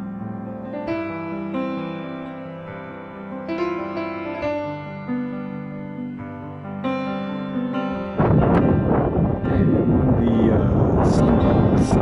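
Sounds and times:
soft piano music: 0:00.0 - 0:12.0
wind buffeting microphone: 0:08.1 - 0:12.0.

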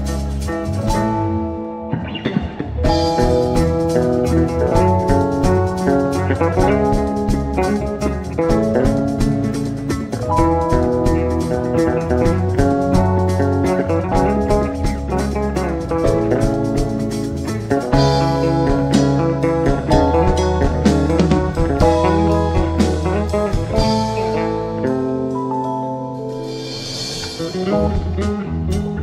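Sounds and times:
drum kit: 0:00.0 - 0:29.0
electric bass: 0:00.0 - 0:29.0
electric guitar: 0:00.0 - 0:29.0
keyboards: 0:00.0 - 0:29.0.

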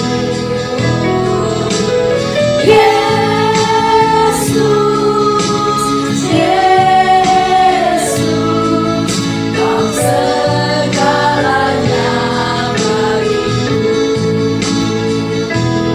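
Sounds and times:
women singing worship song: 0:00.0 - 0:14.2.

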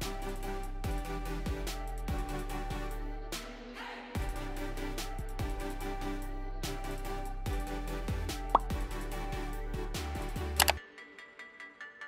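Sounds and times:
music with steady bass beat: 0:00.0 - 0:03.4, 0:04.2 - 0:10.8
sharp double click: 0:10.6 - 0:10.8.

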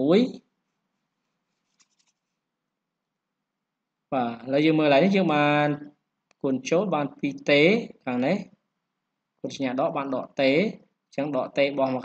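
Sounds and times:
man speaking: 0:00.0 - 0:00.5, 0:04.1 - 0:08.6, 0:09.4 - 0:12.0.

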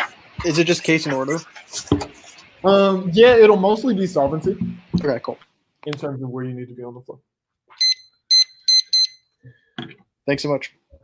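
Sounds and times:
high electronic beeps: 0:07.8 - 0:09.2.

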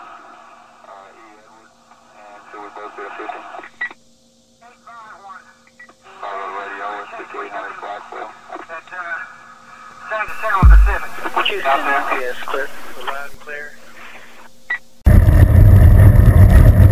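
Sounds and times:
steady hum: 0:00.0 - 0:16.9
radio-like speech: 0:00.9 - 0:03.7, 0:06.1 - 0:09.3, 0:10.0 - 0:14.5
loud low thump: 0:10.6 - 0:11.4.

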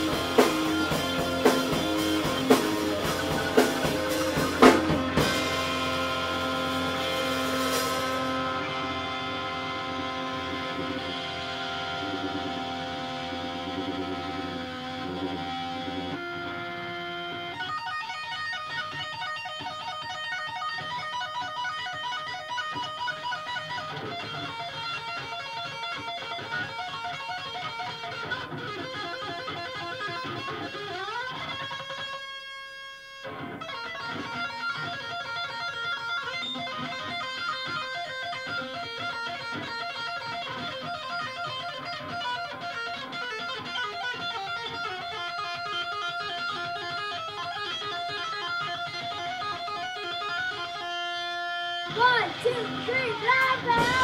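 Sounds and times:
rock band playing: 0:00.0 - 0:32.3, 0:33.2 - 0:54.0.

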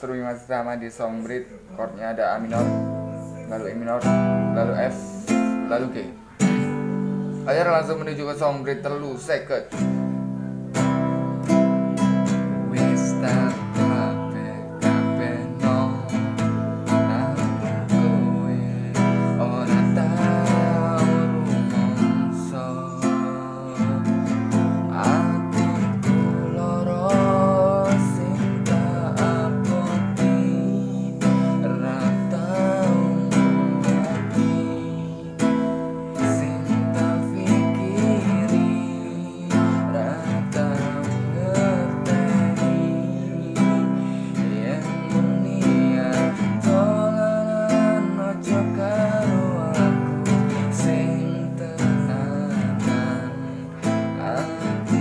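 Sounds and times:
classical guitar strumming: 0:00.0 - 0:55.0.

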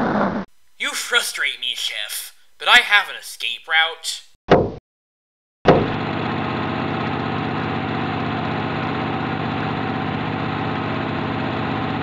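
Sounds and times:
engine running steadily: 0:05.7 - 0:12.0.

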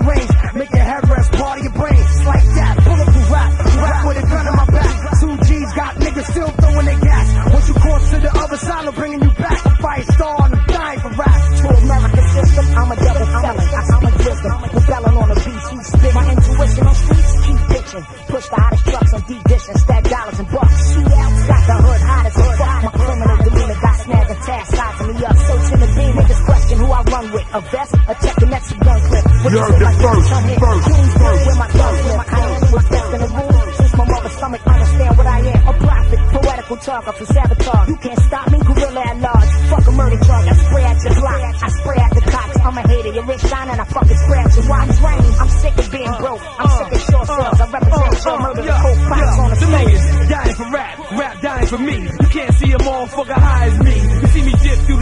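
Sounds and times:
rapping over bass beat: 0:00.0 - 0:55.0.

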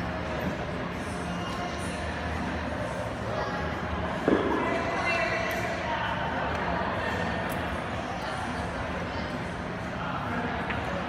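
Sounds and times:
heavy thud echoing: 0:04.2 - 0:04.9.

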